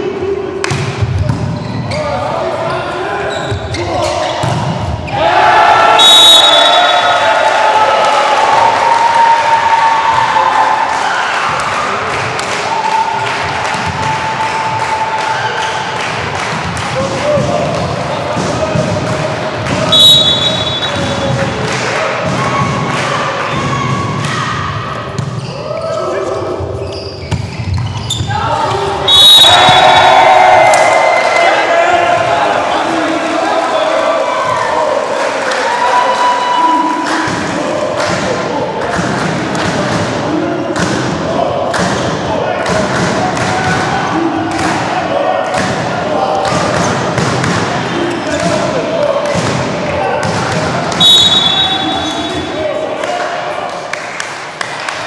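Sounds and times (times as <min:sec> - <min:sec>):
spectators shouting and cheering: 0:03.9 - 0:55.0.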